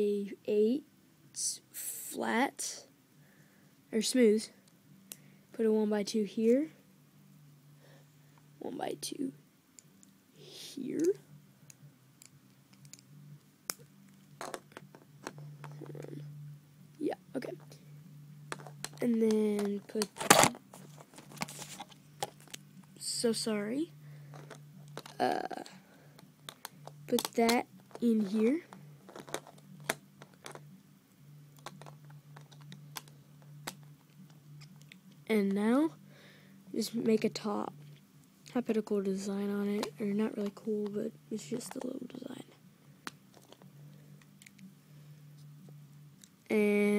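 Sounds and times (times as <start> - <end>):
low hum: 6.2 - 46.9
plastic bricks clicking: 29.1 - 30.6.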